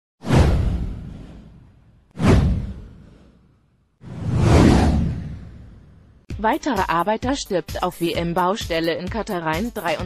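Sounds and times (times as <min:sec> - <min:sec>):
swoosh with deep rumble: 0:00.2 - 0:06.3.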